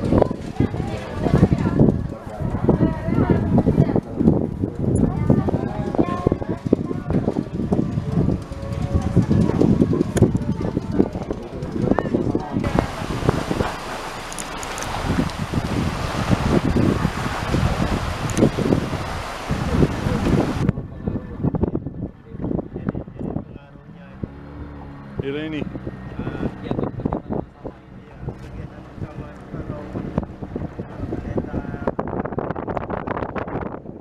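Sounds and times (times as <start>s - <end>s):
people talking outdoors: 0.0s - 34.0s.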